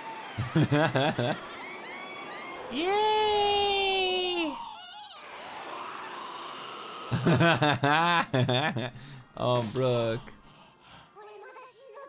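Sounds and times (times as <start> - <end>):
cartoon character crying: 2.8 - 5.1.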